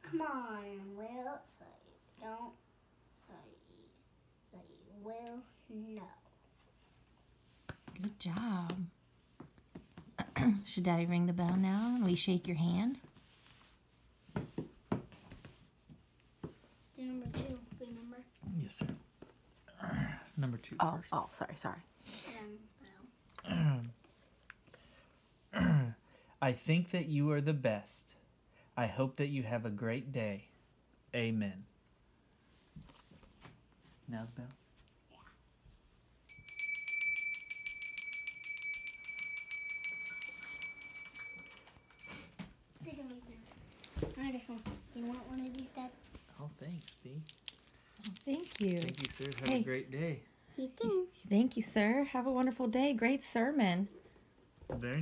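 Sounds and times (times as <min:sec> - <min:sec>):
small bell rung rapidly: 0:36.3 - 0:42.4.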